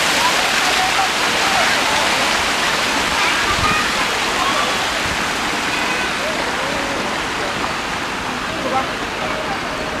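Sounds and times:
faint voices: 0:00.0 - 0:10.0
fountain water splashing: 0:00.0 - 0:10.0.

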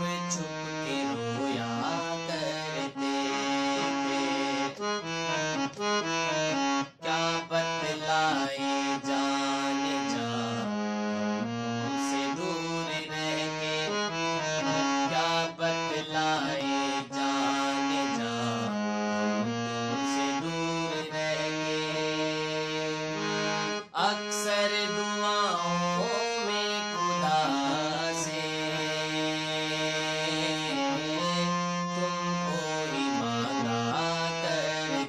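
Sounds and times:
harmonium melody: 0:00.0 - 0:35.0.

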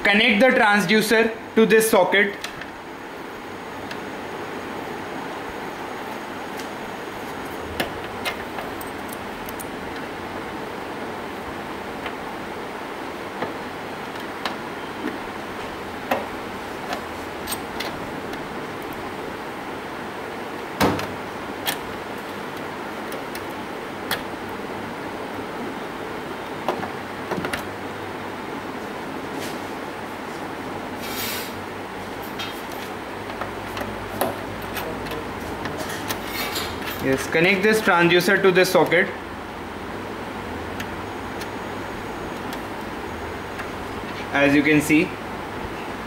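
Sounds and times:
steady background hiss: 0:00.0 - 0:46.0.

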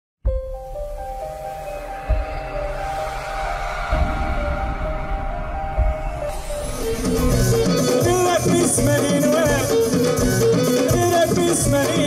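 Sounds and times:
deep low hits: 0:01.3 - 0:08.4.

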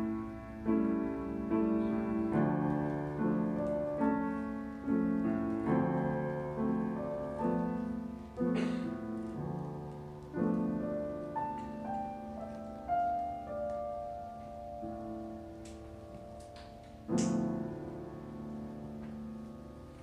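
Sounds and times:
solo grand piano: 0:00.0 - 0:20.0.

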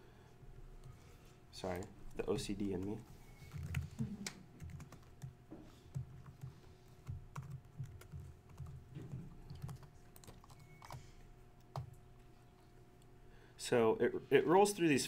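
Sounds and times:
typing on computer keyboard: 0:02.7 - 0:05.3, 0:05.9 - 0:11.0.

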